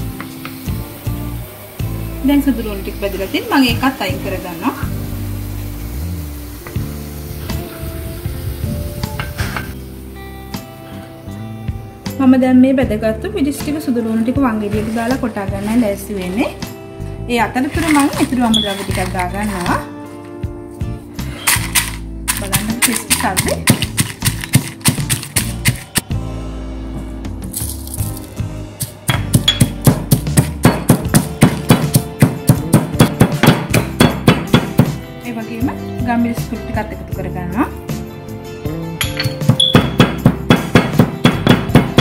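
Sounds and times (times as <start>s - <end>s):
stone pestle pounding in mortar: 22.4s - 26.0s, 28.8s - 35.0s, 39.0s - 42.0s.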